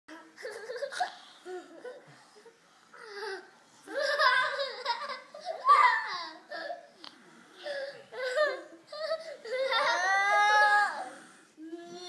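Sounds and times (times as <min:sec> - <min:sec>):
young boys laughing: 0:03.3 - 0:06.9.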